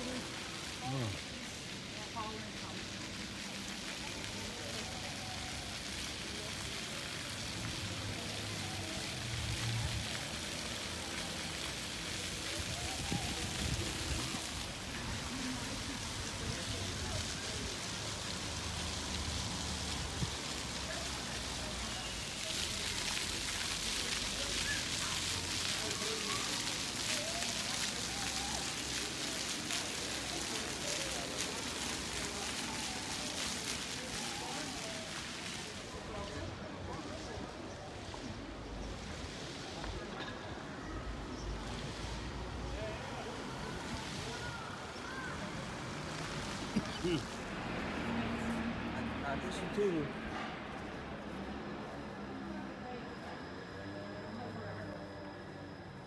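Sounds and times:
faint voices of passers-by: 0:00.0 - 0:56.0
low traffic rumble: 0:00.0 - 0:56.0.

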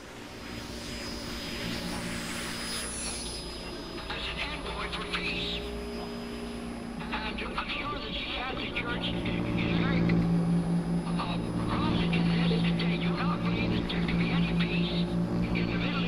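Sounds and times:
low drone: 0:00.0 - 0:16.0
shortwave radio static hiss: 0:00.0 - 0:16.0
garbled broadcast voice: 0:04.0 - 0:05.8, 0:07.0 - 0:10.2, 0:11.0 - 0:16.0.

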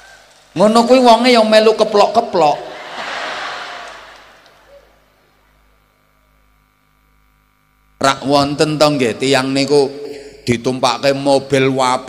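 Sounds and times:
faint steady hum: 0:00.0 - 0:12.0
audience applause: 0:02.7 - 0:04.9.

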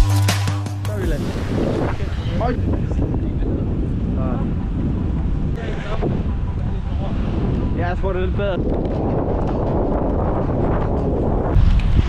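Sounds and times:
wind buffeting microphone: 0:00.9 - 0:12.0.

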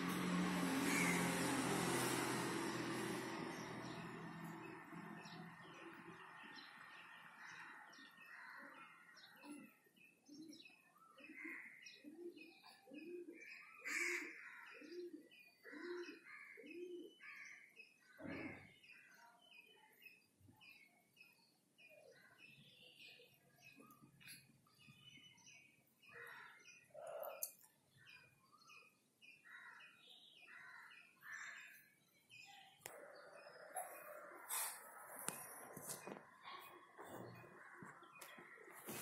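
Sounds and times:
low cooing bird notes: 0:11.2 - 0:17.2.

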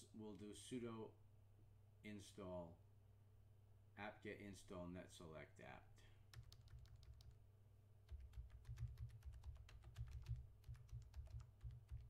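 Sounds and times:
typing on computer keyboard: 0:06.3 - 0:07.4, 0:08.1 - 0:12.0
dull keystroke thuds: 0:08.1 - 0:12.0.

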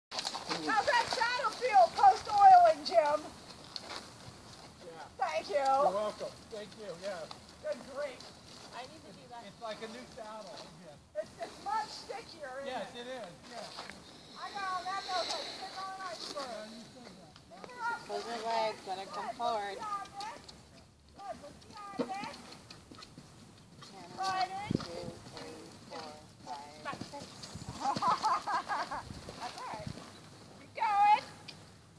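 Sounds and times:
horse hoofbeats on sand: 0:00.1 - 0:04.9, 0:17.6 - 0:30.2
quiet background noise: 0:00.1 - 0:31.9.

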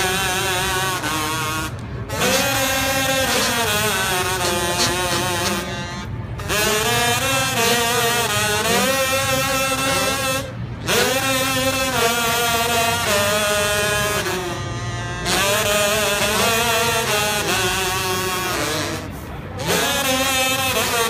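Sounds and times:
voices sung through gourds: 0:02.1 - 0:21.0.

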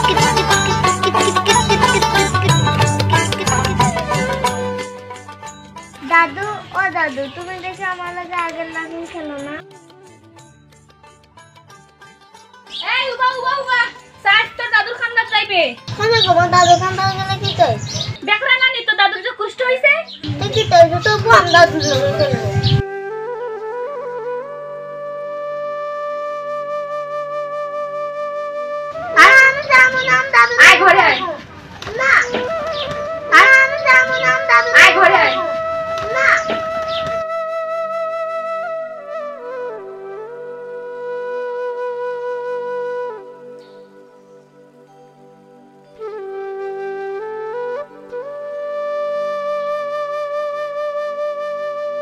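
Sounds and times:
flute holding a long note: 0:22.2 - 0:29.6, 0:32.2 - 0:45.2, 0:45.8 - 0:52.0.

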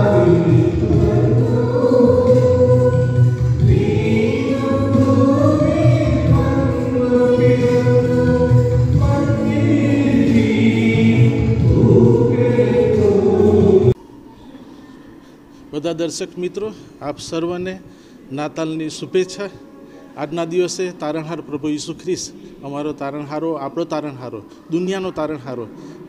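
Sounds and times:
choir singing a hymn: 0:00.0 - 0:14.0
low accompaniment: 0:00.0 - 0:14.0.

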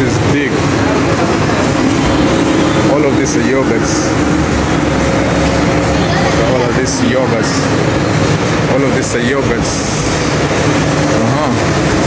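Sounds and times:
faint refrigeration hum: 0:00.0 - 0:12.0
steady low rumble: 0:00.0 - 0:12.0.

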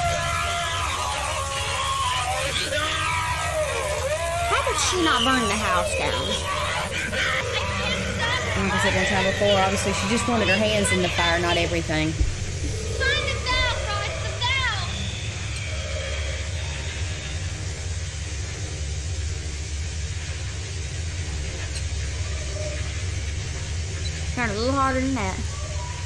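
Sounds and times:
low rumbling drone: 0:00.0 - 0:26.0.

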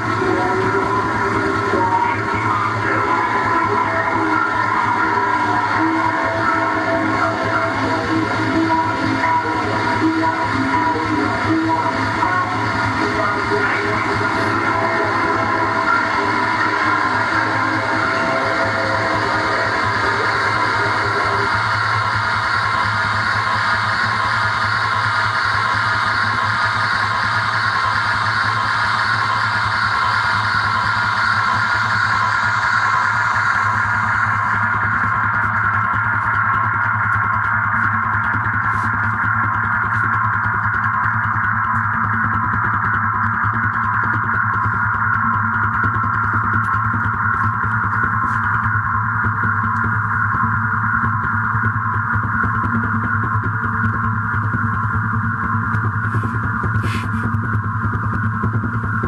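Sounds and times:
fast low pulse: 0:00.0 - 0:59.0
low hum: 0:00.0 - 0:59.0
synthesizer drone: 0:00.0 - 0:59.0.

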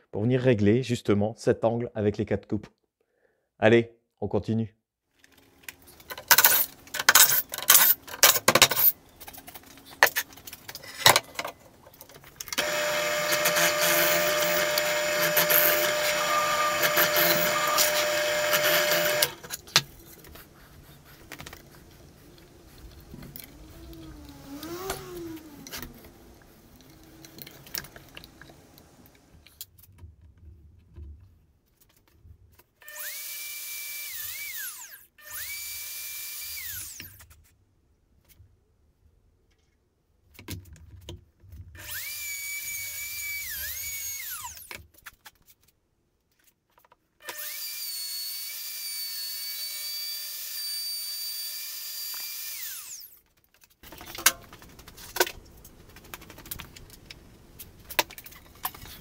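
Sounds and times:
electric router whining: 0:12.6 - 0:19.5, 0:23.3 - 0:29.2.

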